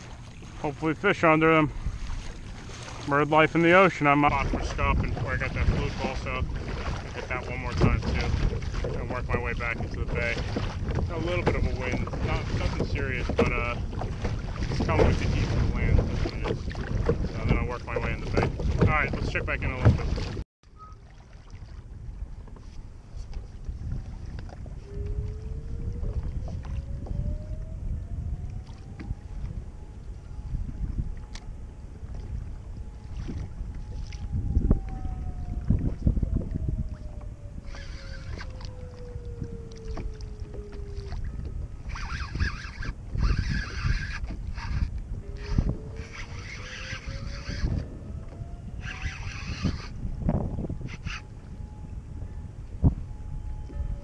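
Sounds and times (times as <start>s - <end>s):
water against kayak hull: 0.0s - 54.0s
wind buffeting microphone: 0.0s - 54.0s
spinning reel being cranked: 41.9s - 47.8s, 48.8s - 50.0s, 50.9s - 51.2s.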